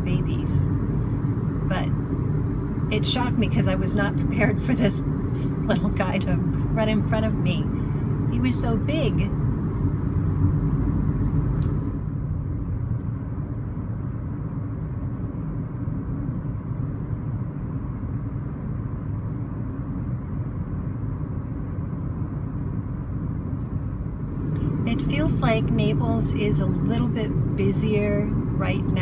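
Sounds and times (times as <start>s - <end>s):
car cabin road rumble: 0.0s - 29.0s.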